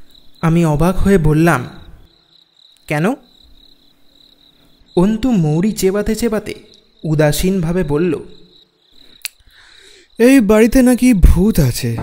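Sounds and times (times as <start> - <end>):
faint crickets chirping: 0.0 - 12.0
man narrating: 0.4 - 2.0, 2.8 - 3.3, 5.0 - 8.5, 10.2 - 12.0.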